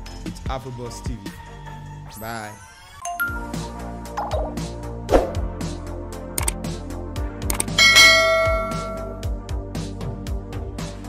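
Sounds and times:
background music with steady beat: 0.0s - 11.0s
bell chime: 3.0s - 3.7s, 7.8s - 9.3s.

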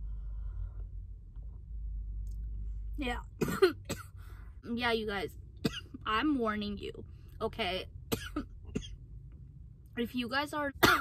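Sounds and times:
woman coughing harshly: 3.4s - 4.2s, 5.6s - 6.0s, 8.1s - 9.0s, 10.8s - 11.0s.

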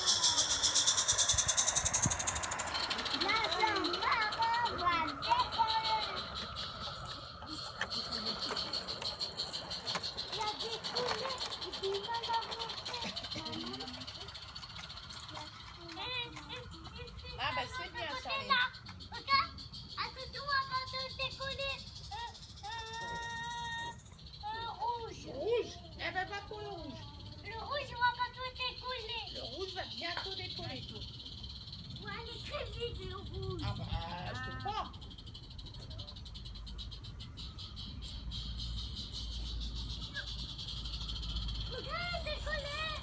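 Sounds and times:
steam locomotive chuffing: 0.0s - 43.0s.

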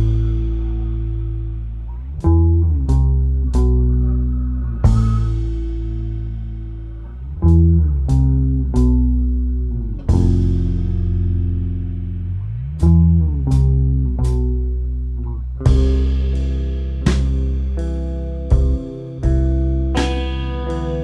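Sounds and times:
instrumental indie rock: 0.0s - 21.0s.

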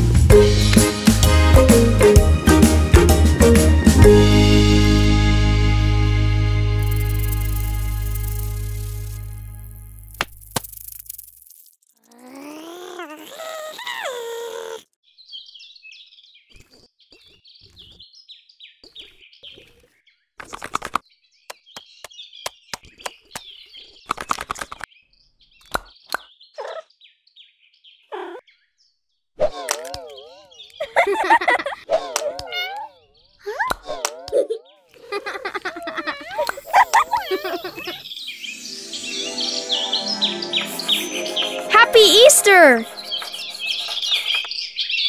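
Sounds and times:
music chord: 0.3s - 9.6s, 38.4s - 43.6s
wobbling giggle-like voice: 12.1s - 14.8s, 29.4s - 38.0s
bird chirping: 35.6s - 41.7s, 42.8s - 45.0s.

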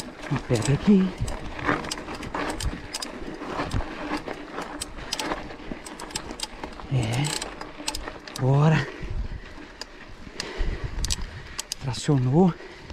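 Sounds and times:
bike rattling: 0.0s - 12.9s
bike tyres crunching on gravel: 0.0s - 12.9s.

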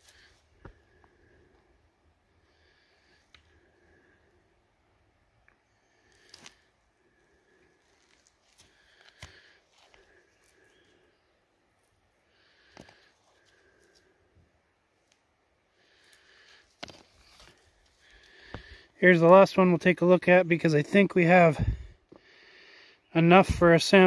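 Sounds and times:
rocks clicking and rustling in hands: 5.5s - 6.7s, 7.8s - 10.7s, 16.0s - 18.8s.

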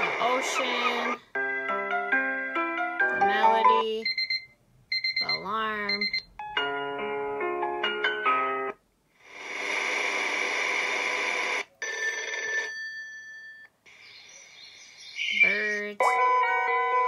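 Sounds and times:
electronic alarm melody: 3.4s - 6.8s.

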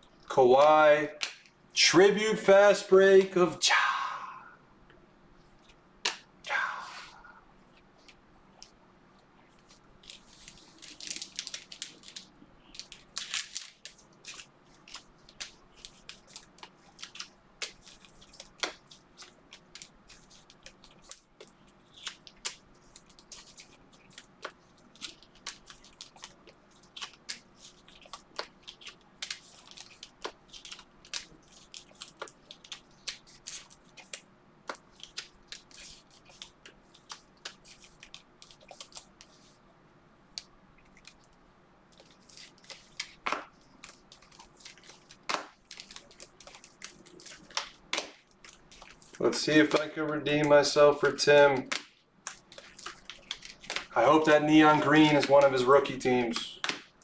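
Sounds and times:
plastic sleeves crinkling: 9.4s - 39.6s, 40.3s - 57.0s
cards clicking and flicking: 10.3s - 39.4s, 42.0s - 57.0s.

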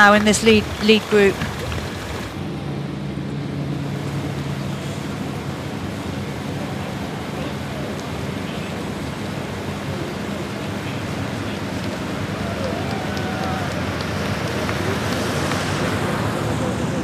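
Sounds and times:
road noise: 0.0s - 17.0s
vehicle engine humming: 0.0s - 17.0s.

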